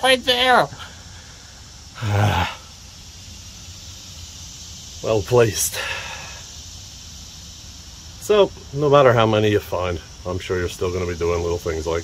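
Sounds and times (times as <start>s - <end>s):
man groaning: 2.0s - 2.7s.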